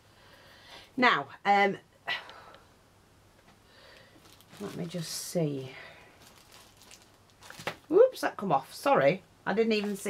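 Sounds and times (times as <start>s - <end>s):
woman's voice: 1.0s - 2.4s, 4.6s - 6.0s, 7.9s - 10.0s.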